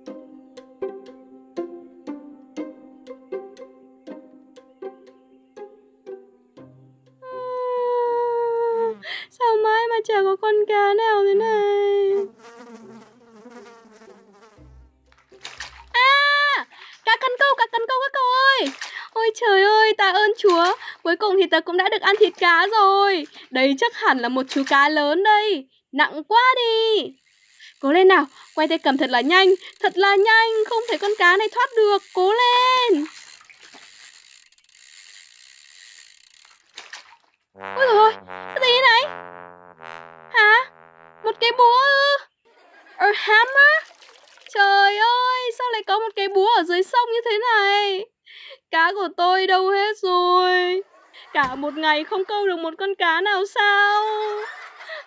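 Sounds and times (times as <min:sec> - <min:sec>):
fishing reel whirring: 0:26.6 - 0:36.9.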